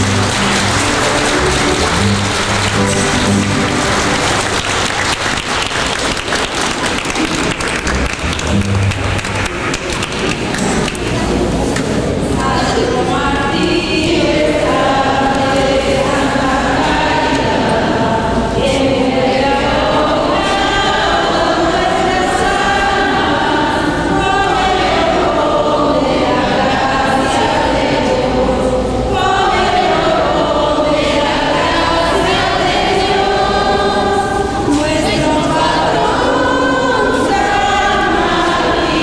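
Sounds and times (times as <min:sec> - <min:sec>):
congregation singing: 0:00.0 - 0:39.0.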